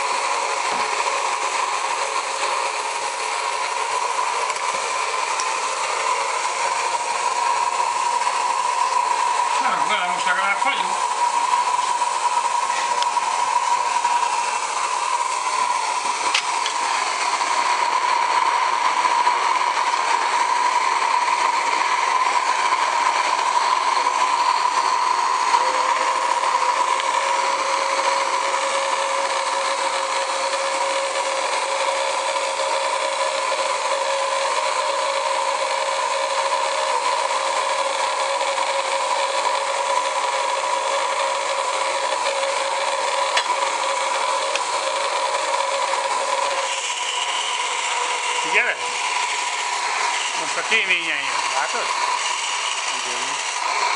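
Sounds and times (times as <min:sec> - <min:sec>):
steam hissing: 0:00.0 - 0:53.9
lower whistling tone: 0:23.9 - 0:26.8.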